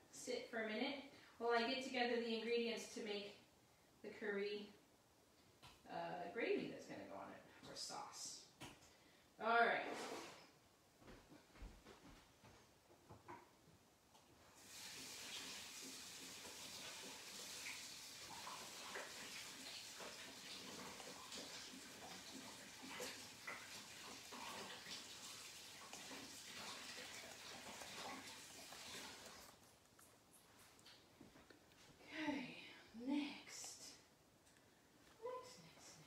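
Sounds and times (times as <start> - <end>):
water running from a tap: 14.6 - 29.6.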